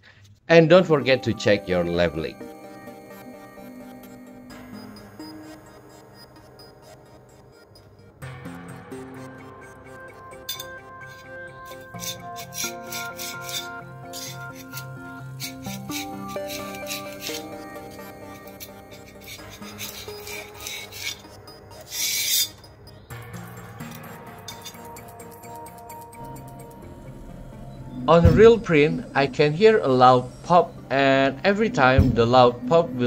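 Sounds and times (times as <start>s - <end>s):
background music: 0.5s - 33.0s
flat tool scraping build plate: 10.5s - 22.7s, 23.8s - 25.2s.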